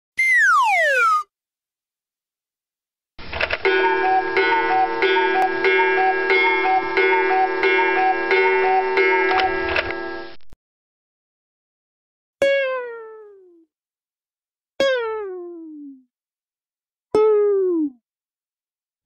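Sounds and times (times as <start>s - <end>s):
descending whistle sound effect: 0.2s - 1.3s.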